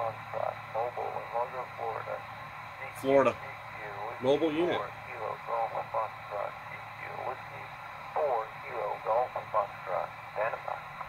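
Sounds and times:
radio band noise hiss: 0:00.0 - 0:11.0
tinny radio voice: 0:00.0 - 0:11.0.

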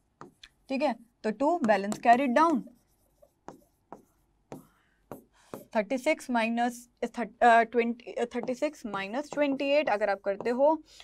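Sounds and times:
chalk writing on blackboard: 0:00.0 - 0:00.8, 0:01.6 - 0:05.8, 0:08.2 - 0:10.9.

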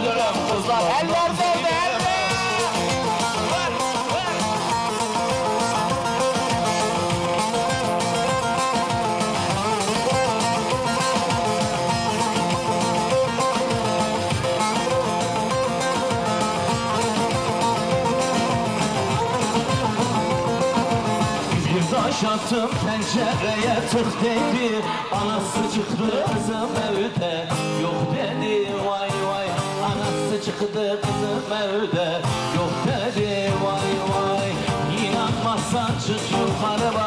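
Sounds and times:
plucked-string melody: 0:00.0 - 0:31.6
live band playing folk dance: 0:00.0 - 0:37.0.

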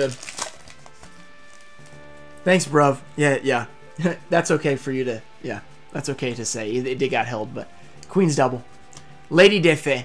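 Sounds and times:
foil wrapper crinkling: 0:00.0 - 0:01.9
soft background music: 0:00.0 - 0:10.0.

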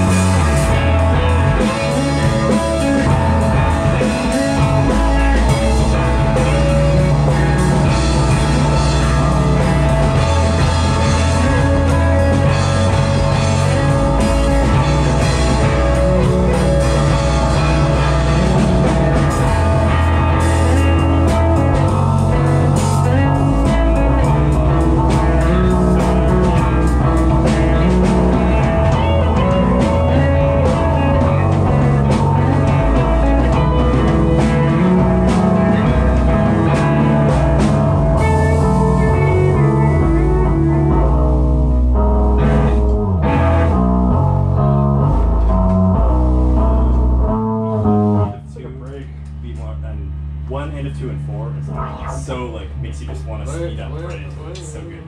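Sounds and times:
live rock band playing: 0:00.0 - 0:48.4
held low note: 0:00.0 - 0:55.0.

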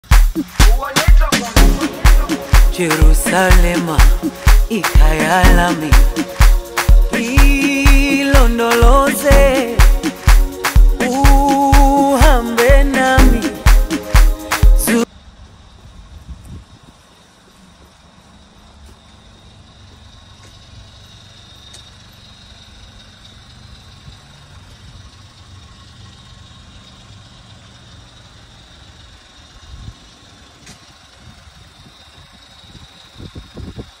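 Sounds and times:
car engine idling: 0:00.0 - 0:16.2, 0:17.1 - 0:34.0.

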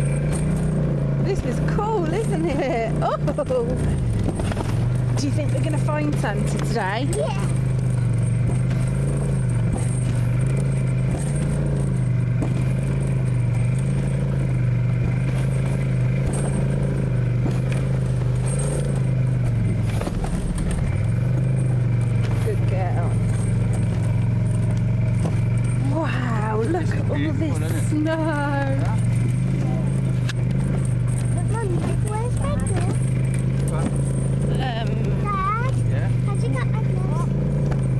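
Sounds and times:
snowmobile engine drone: 0:00.0 - 0:37.9
voices: 0:01.2 - 0:04.4, 0:05.1 - 0:08.2, 0:22.2 - 0:24.8, 0:25.6 - 0:37.4.

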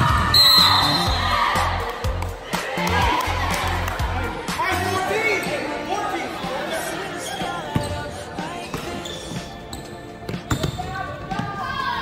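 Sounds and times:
crowd and player voices: 0:00.0 - 0:12.0.

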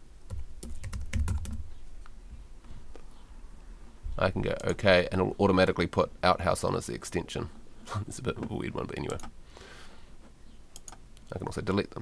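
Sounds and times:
typing on a computer keyboard: 0:00.3 - 0:01.6, 0:10.8 - 0:11.0.

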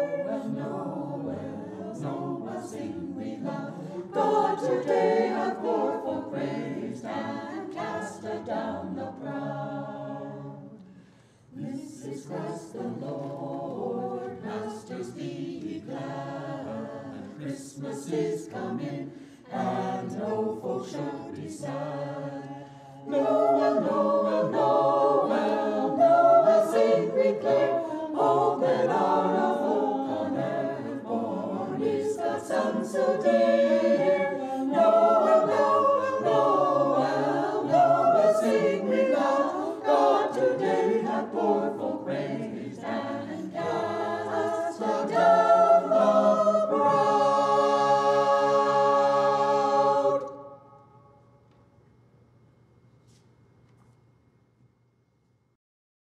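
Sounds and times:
mixed choir singing a cappella: 0:00.0 - 0:51.2.

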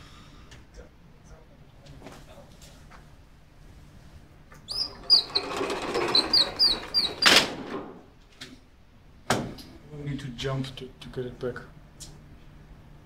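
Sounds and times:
projector screen retracting whir: 0:04.5 - 0:08.1
high squeaks: 0:04.7 - 0:07.4.

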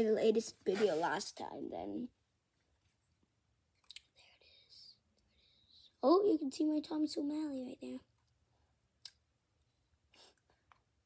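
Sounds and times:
soft hissy breaths: 0:04.1 - 0:06.0.

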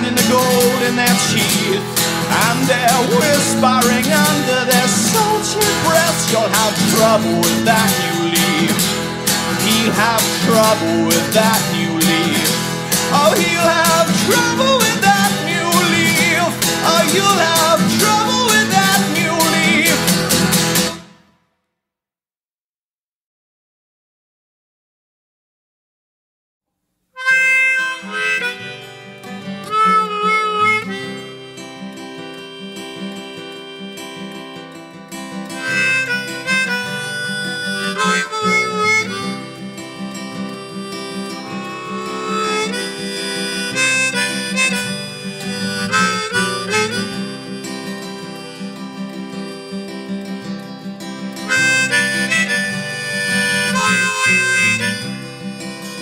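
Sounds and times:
harmonica: 0:00.0 - 0:21.1, 0:27.2 - 0:56.0
acoustic guitar: 0:00.0 - 0:21.4, 0:27.2 - 0:56.0.

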